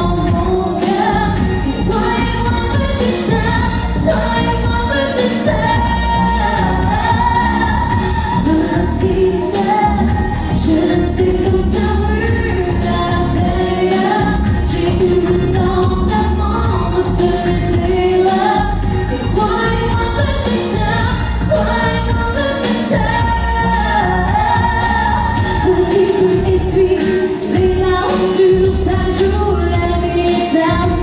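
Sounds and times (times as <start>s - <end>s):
band accompaniment: 0.0s - 31.0s
woman singing pop song: 0.0s - 31.0s.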